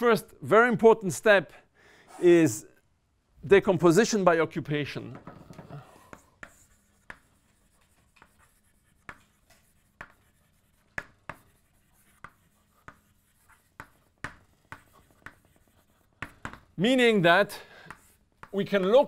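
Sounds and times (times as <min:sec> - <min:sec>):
chalk writing on blackboard: 0:05.6 - 0:16.8, 0:17.5 - 0:19.0.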